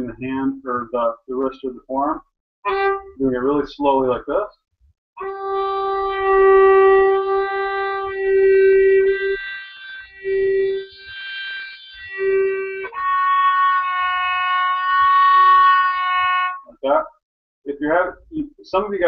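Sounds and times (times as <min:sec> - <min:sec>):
violin with slow vibrato: 0:02.6 - 0:03.8, 0:05.2 - 0:16.8.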